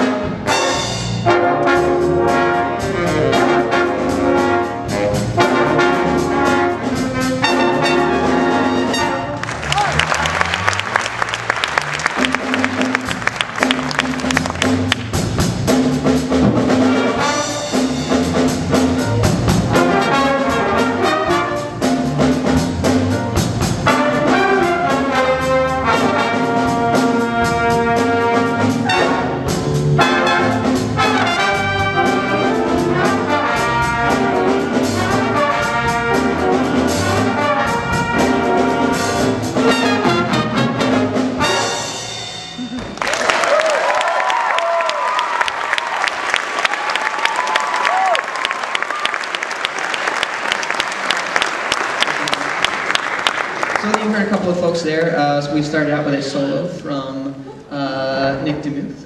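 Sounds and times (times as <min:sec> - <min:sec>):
jazz big band playing funk: 0:00.0 - 0:42.6.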